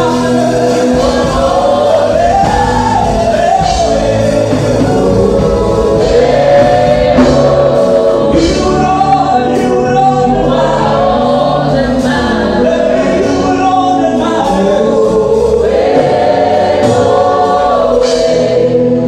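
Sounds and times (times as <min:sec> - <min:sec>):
low musical accompaniment: 0:00.0 - 0:19.0
voices singing along: 0:00.0 - 0:19.0.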